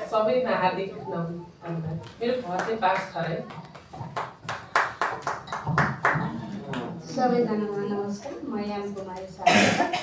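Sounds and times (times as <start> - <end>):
people clapping: 2.0 - 7.0.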